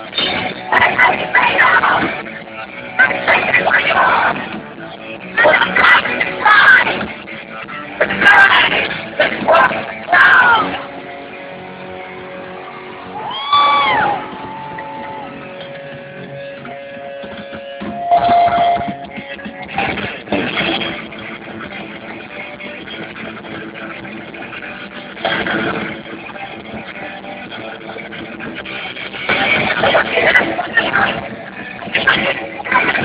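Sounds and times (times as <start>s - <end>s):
live electric guitar: 0.0s - 33.0s.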